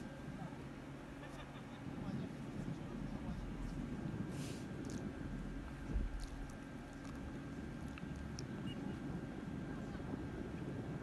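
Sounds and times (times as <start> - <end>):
low background rumble: 0.0 - 11.0.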